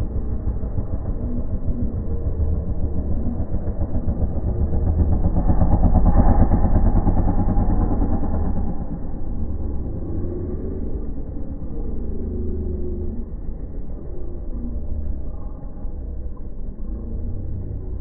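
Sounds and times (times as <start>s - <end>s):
dirt bike engine revving: 0.0s - 11.2s.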